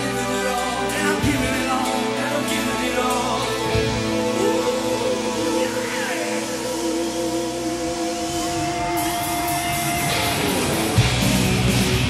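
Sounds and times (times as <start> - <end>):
electric guitar notes: 0.0 - 12.0
rock band playing: 0.0 - 12.0.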